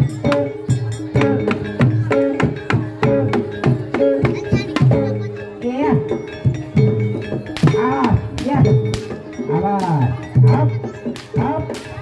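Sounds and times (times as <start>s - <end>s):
hand-drum strokes: 0.0s - 12.0s
ringing metallic tone: 0.0s - 12.0s.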